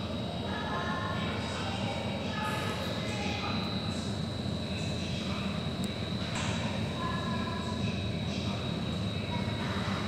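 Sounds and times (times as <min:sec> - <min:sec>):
indoor background hum: 0:00.0 - 0:10.0.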